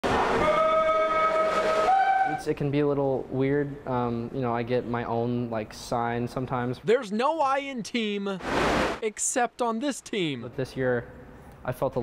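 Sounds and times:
swim start horn tone: 0:00.2 - 0:02.4
indoor pool hiss: 0:08.3 - 0:09.5.

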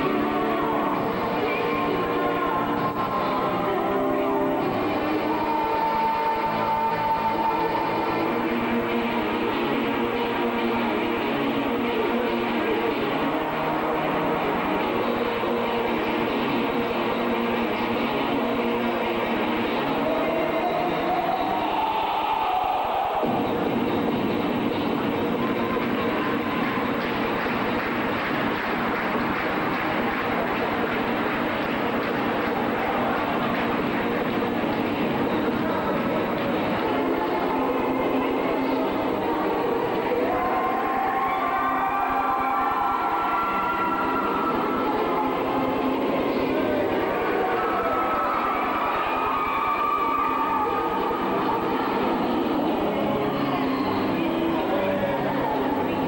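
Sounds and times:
loud distorted dance music: 0:00.0 - 0:56.0.

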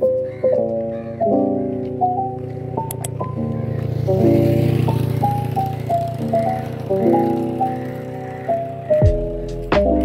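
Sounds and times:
lo-fi keyboard melody: 0:00.0 - 0:10.0.

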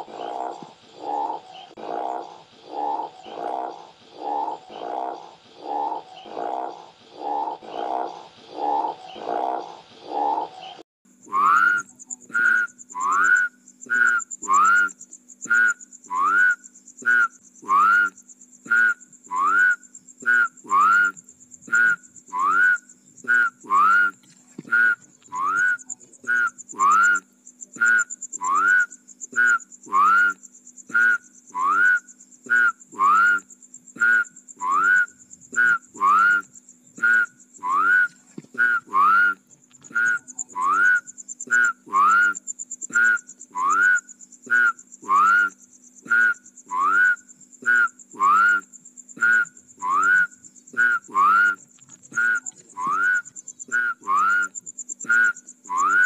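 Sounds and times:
frog calling: 0:00.0 - 0:56.0.

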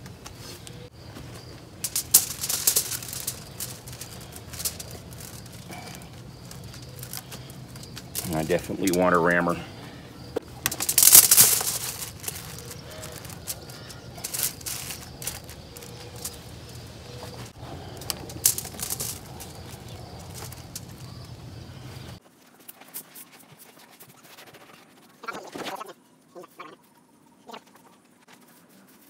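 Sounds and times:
gritty crunches and pats: 0:00.0 - 0:25.2.

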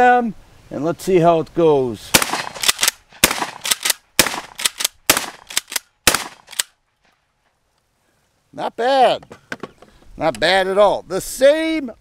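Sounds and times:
shotgun shots: 0:02.1 - 0:06.7.

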